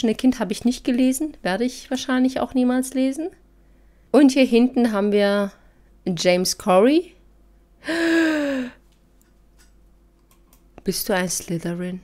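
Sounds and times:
woman speaking: 0.0s - 3.4s, 4.1s - 7.2s, 10.8s - 12.0s
woman sighing: 7.8s - 8.8s.

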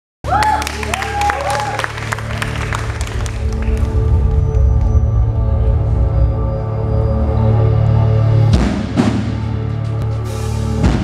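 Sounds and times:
audience applause: 0.2s - 4.8s.

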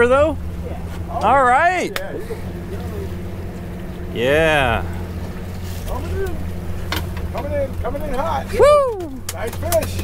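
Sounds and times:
boat engine running: 0.0s - 10.0s.

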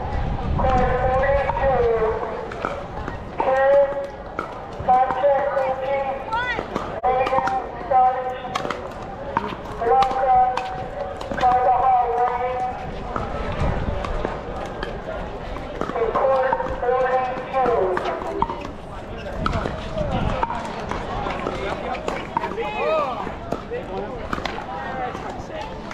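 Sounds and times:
voices talking: 0.0s - 25.9s.

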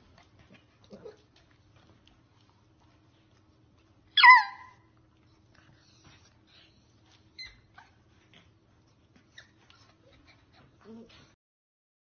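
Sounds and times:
puppy whimpering: 4.2s - 4.8s, 7.1s - 8.4s, 9.1s - 11.4s.

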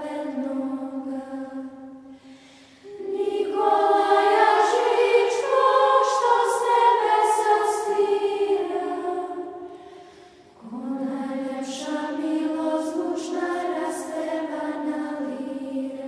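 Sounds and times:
children's choir singing a hymn: 0.0s - 16.0s.

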